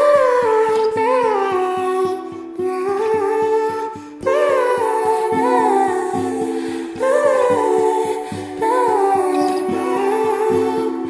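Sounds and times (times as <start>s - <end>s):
woman's wordless singing: 0.0s - 11.0s.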